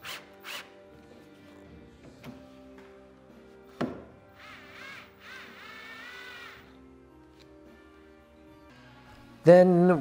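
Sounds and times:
background music: 0.0s - 10.0s
cordless drill whining: 4.4s - 6.7s.

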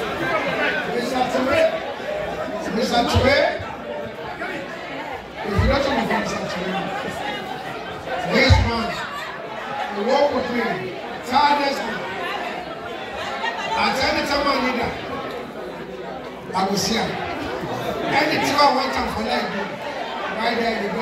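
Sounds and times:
chatter echoing in a hall: 0.0s - 21.0s.

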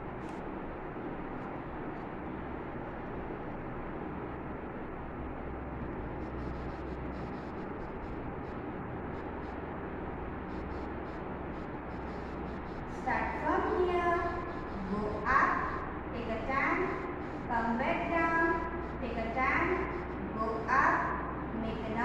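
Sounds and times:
low hum and hiss: 0.0s - 22.0s.

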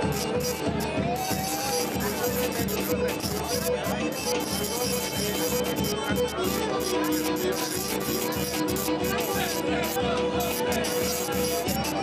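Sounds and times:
folk dance music with violin: 0.0s - 12.0s.

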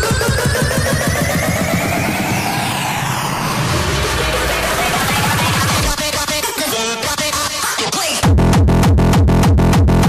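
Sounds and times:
rising synth sweep: 0.0s - 6.0s
low rumble: 0.5s - 6.0s.

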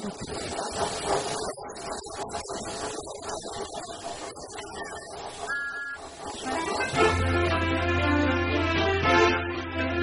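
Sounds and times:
steam hissing: 0.0s - 8.8s
music: 6.4s - 10.0s.

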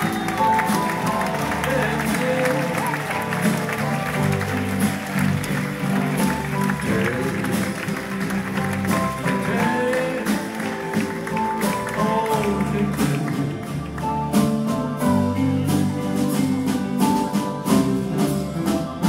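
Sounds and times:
audience clapping: 0.0s - 17.3s
live pop band playing: 0.0s - 19.0s.

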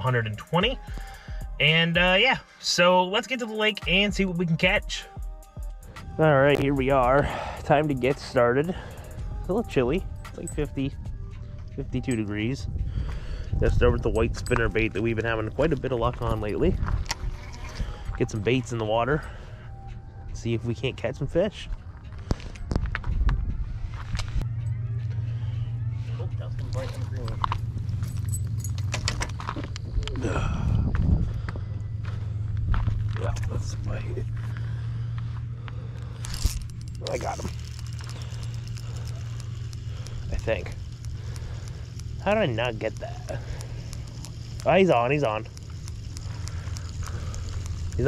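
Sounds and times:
steady low rumble: 3.8s - 48.0s
fishing reel clicks and knocks: 6.7s - 11.0s, 13.5s - 19.4s, 26.7s - 30.1s, 34.3s - 48.0s.

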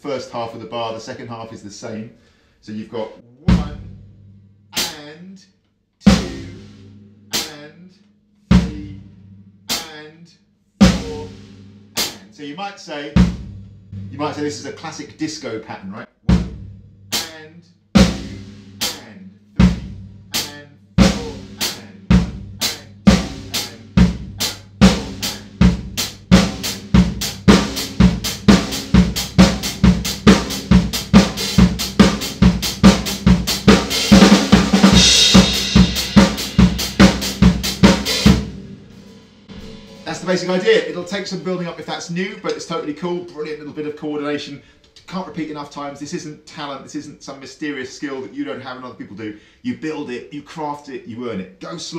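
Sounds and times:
drum kit disco groove: 4.8s - 5.1s, 6.1s - 6.7s, 16.3s - 17.4s, 18.0s - 43.9s
cymbal wash: 34.9s - 41.5s.

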